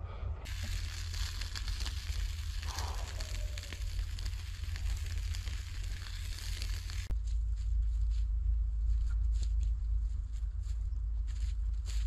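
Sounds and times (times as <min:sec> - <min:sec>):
crackles over steady hiss: 0:00.5 - 0:07.1
meat sizzling over coals: 0:00.5 - 0:07.1.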